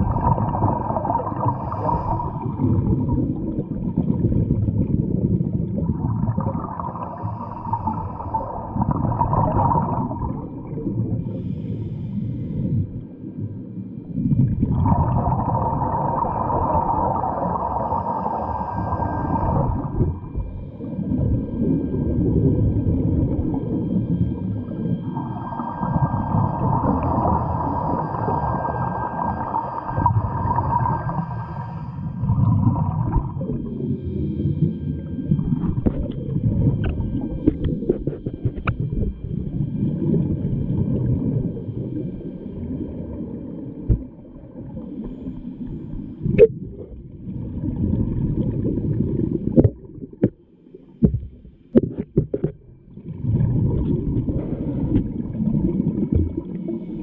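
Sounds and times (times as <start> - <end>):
regulator inhalations: 11.3 - 13.0.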